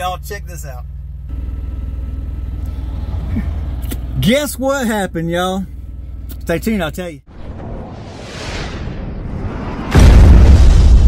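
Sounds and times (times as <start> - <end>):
diesel truck engine idling: 0.0 - 6.4
highway traffic passing: 1.2 - 4.3.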